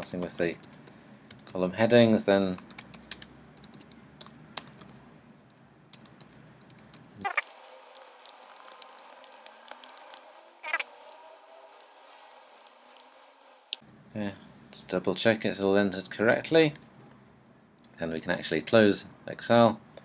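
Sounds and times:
keyboard typing: 0.0s - 1.6s, 2.5s - 5.0s, 5.9s - 11.2s.

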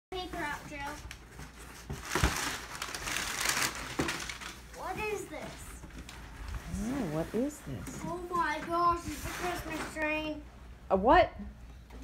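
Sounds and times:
cardboard rustling: 0.2s - 6.9s
packing paper crinkling: 0.9s - 4.7s.

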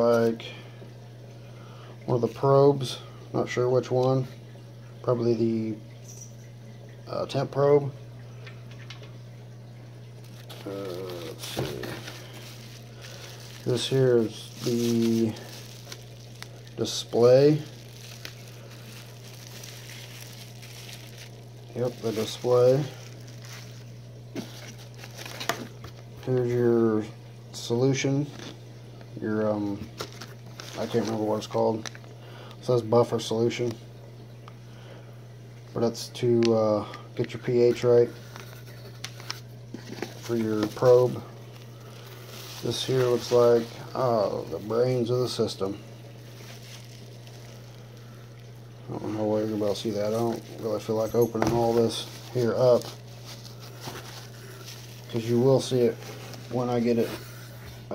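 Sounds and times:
steady low hum and hiss: 0.0s - 57.9s
bubble-wrap bag crinkling: 10.2s - 26.6s, 29.9s - 32.8s, 38.3s - 57.9s.

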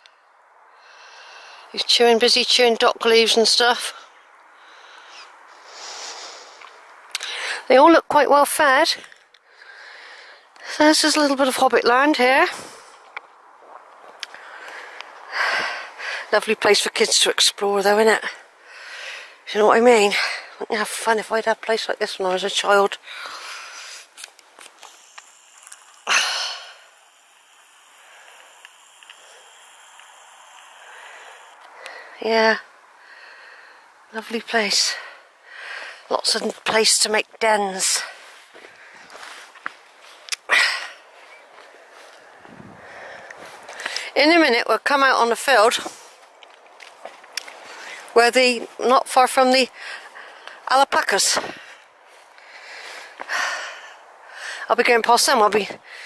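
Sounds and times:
soft rustling hiss: 0.0s - 56.0s
loud burst of breath: 0.7s - 1.7s, 4.5s - 7.6s, 9.4s - 10.6s, 14.3s - 16.3s, 18.5s - 19.4s, 23.0s - 32.2s, 32.9s - 34.0s, 40.4s - 44.2s, 51.4s - 54.7s
faint clicks and rustles: 21.5s - 26.1s, 45.7s - 48.8s.

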